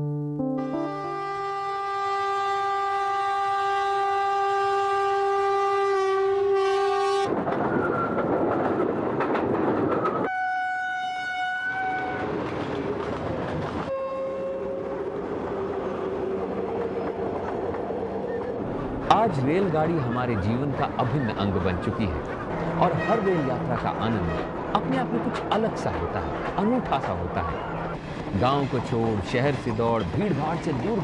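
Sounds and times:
train horn: 0.6 - 7.4, 10.2 - 12.3, 13.9 - 17.1, 22.5 - 25.4
passing train rumble and clatter: 0.9 - 31.0.

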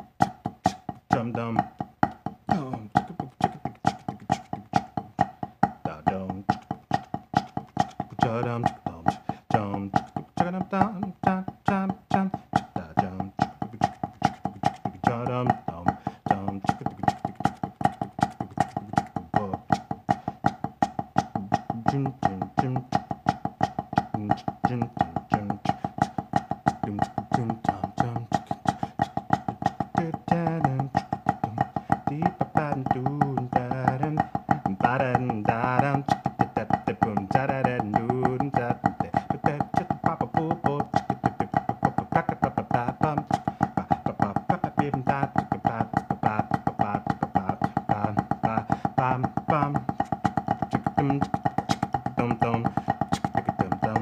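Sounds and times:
backing music with bass line: 0.0 - 54.0
drumsticks tapping a practice pad: 0.0 - 54.0.

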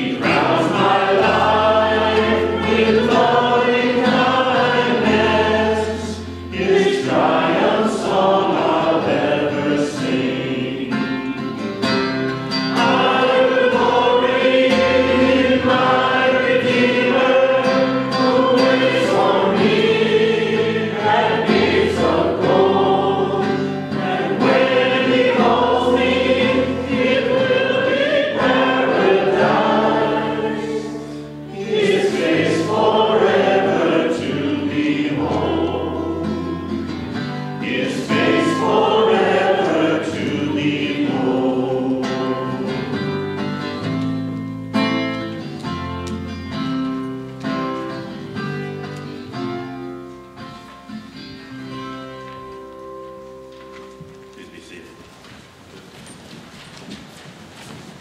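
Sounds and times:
congregation singing a hymn: 0.0 - 44.4
acoustic guitar: 0.0 - 58.0.

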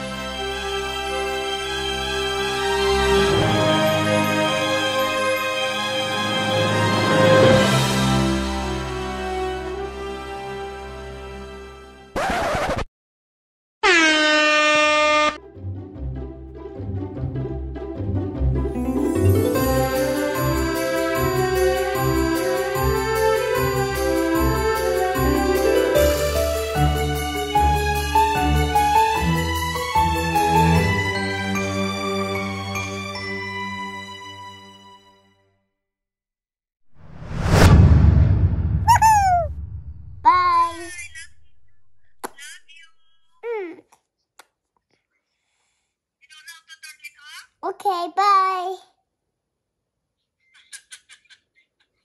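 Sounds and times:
loud horn-like blast: 13.9 - 15.4
loud whoosh with rumble: 37.0 - 40.5
high tone sliding downward: 38.7 - 40.4.

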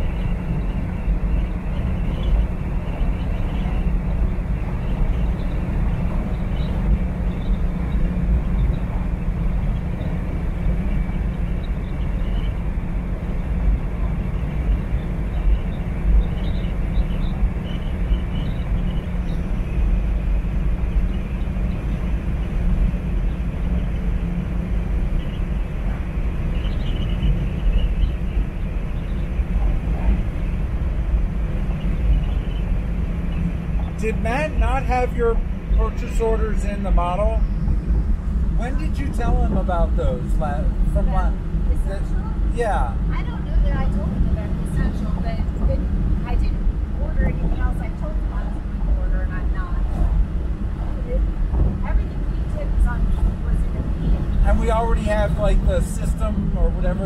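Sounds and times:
car cabin road rumble: 0.0 - 57.0.

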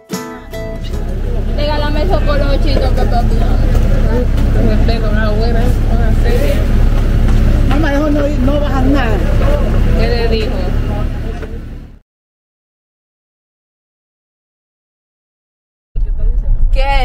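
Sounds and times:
garbage truck engine running: 0.0 - 12.0
voices talking: 0.4 - 12.0.

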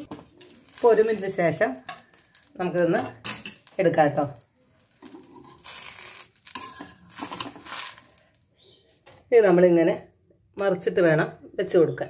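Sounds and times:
kitchenware clinking against pan: 3.0 - 3.7, 6.5 - 7.8.

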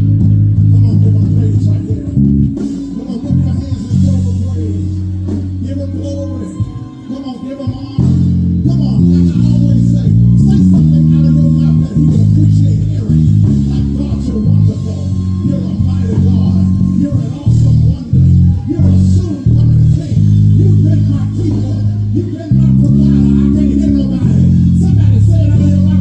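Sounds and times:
electric bass line: 0.0 - 26.0.

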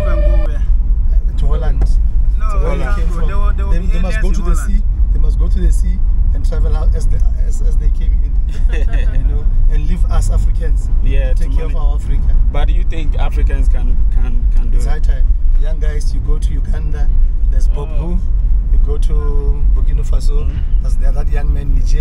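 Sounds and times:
car engine and tyres rumbling: 0.0 - 22.0
men talking: 0.0 - 22.0.

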